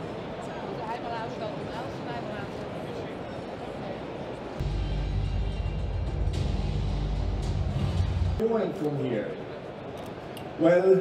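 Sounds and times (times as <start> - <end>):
crowd chatter: 0.0 - 11.0
deep bass-heavy music: 4.6 - 8.4.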